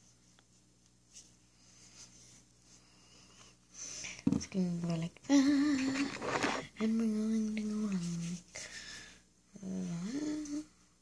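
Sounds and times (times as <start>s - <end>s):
girl humming: 5.3s - 8.3s, 9.6s - 10.7s.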